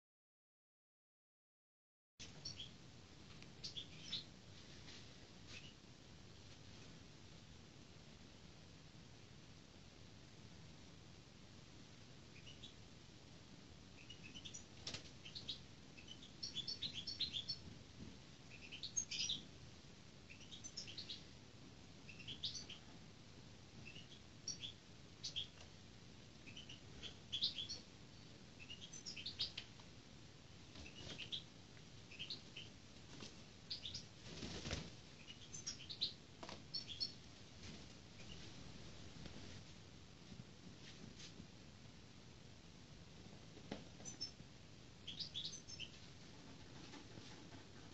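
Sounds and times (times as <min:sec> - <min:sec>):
small bird chirping: 0:02.2 - 0:02.8, 0:03.5 - 0:04.3, 0:05.5 - 0:05.8, 0:12.3 - 0:12.8, 0:13.9 - 0:17.7, 0:18.5 - 0:19.5, 0:20.2 - 0:21.3, 0:22.0 - 0:23.0, 0:23.8 - 0:25.7, 0:26.4 - 0:29.8, 0:30.7 - 0:32.8, 0:33.6 - 0:34.5, 0:35.1 - 0:37.2, 0:38.2 - 0:38.4, 0:43.9 - 0:44.4, 0:45.0 - 0:46.0
bird wing flaps: 0:34.2 - 0:35.0.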